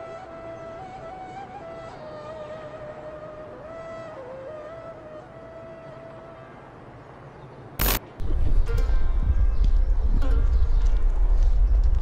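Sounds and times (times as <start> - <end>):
soft background music: 0.0 - 7.2
loud burst of noise: 7.8 - 8.4
wind rumble on microphone: 8.1 - 12.0.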